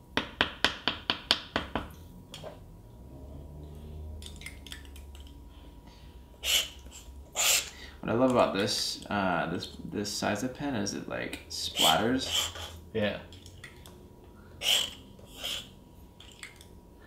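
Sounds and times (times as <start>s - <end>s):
pen scratching across paper: 14.6s - 15.7s.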